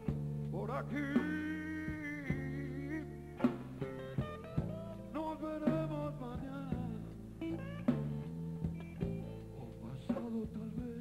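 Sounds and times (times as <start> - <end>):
blues band playing live: 0.0 - 11.0
sharp drum strikes: 3.4 - 7.0, 7.8 - 9.3.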